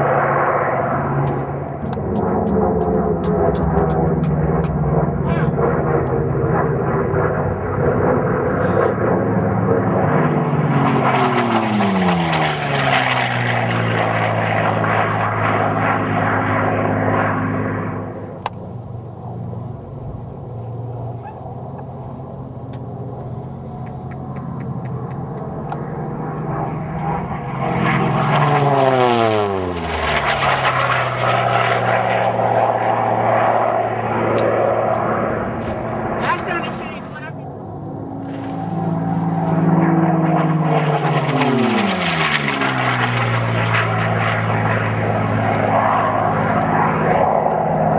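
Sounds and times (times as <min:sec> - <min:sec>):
propeller aircraft fly-by: 0:00.0 - 0:47.9.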